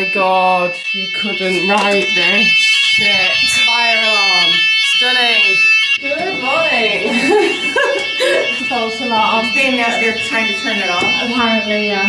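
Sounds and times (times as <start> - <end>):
fire alarm high-pitched tone: 0.0 - 12.0
person speaking: 0.2 - 12.0.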